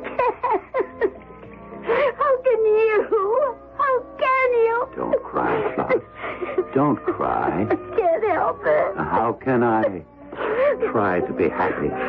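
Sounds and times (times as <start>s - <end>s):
woman crying and sobbing: 0.0s - 11.0s
background music: 0.0s - 12.0s.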